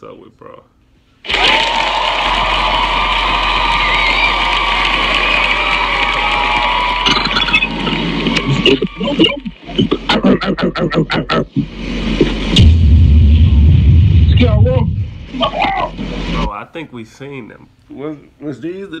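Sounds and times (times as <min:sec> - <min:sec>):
dense video playback with voices: 0:08.6 - 0:11.9, 0:14.1 - 0:19.0.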